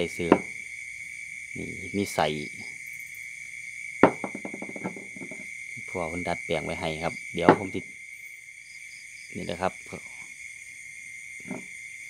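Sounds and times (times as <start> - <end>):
crickets trilling: 0.0 - 12.0
glass bottle knock on wood: 0.3 - 0.5, 4.0 - 5.5, 7.4 - 7.9, 11.5 - 11.7.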